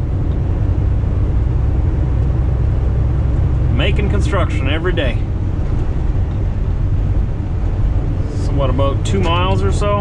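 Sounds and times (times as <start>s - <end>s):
diesel truck engine drone: 0.0s - 10.0s
road rumble: 0.0s - 10.0s.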